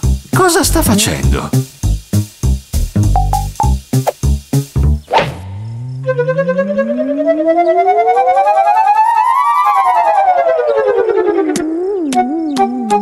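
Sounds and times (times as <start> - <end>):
gliding cartoon tone: 6.0 - 9.3.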